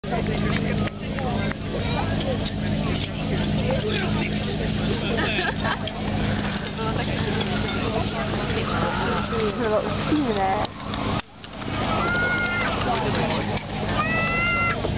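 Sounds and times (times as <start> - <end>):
pump engine running: 0.0 - 14.9
voices shouting: 0.6 - 14.9.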